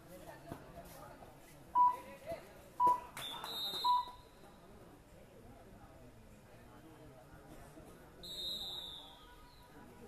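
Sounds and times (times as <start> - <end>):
short electronic beeps: 1.8 - 2.0, 2.8 - 4.2
shrill referee whistle: 3.2 - 4.2, 8.2 - 9.6.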